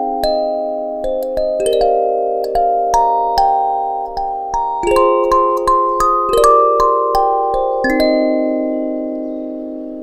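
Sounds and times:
kalimba chord ringing: 0.0 - 10.0.

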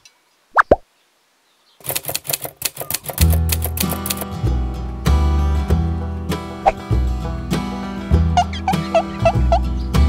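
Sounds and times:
pitched plop sound effects: 0.6 - 0.8
bass line: 3.2 - 10.0
strummed acoustic guitar: 3.2 - 10.0.

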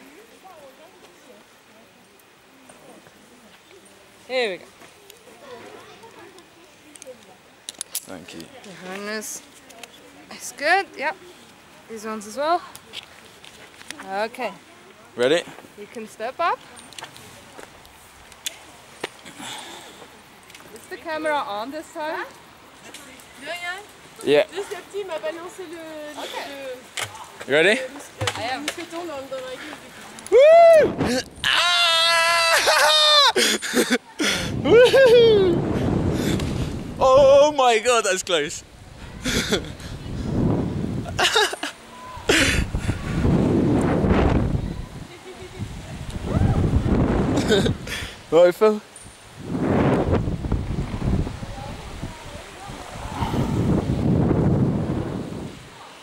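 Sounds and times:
wind buffeting microphone: 30.3 - 31.5, 34.3 - 37.6, 38.6 - 48.3, 49.2 - 55.8
breathy laughs: 32.5 - 35.5, 39.2 - 40.0, 41.0 - 43.0, 47.4 - 48.2.

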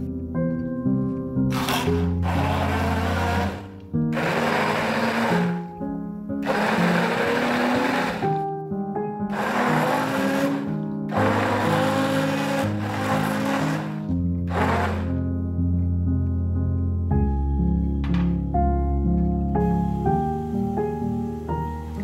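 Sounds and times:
background music: 0.0 - 22.0
kitchen appliance motor bursts: 1.5 - 5.7, 6.4 - 8.4, 9.3 - 15.1.

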